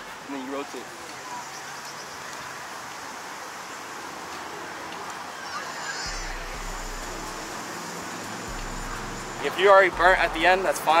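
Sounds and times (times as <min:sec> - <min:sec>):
open-air hiss: 0:00.0 - 0:11.0.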